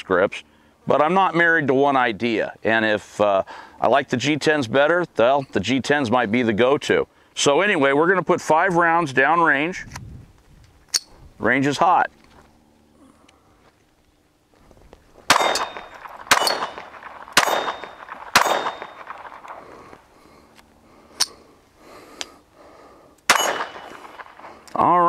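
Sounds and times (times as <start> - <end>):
pistol shots: 15.3 - 19.8, 23.3 - 24.6.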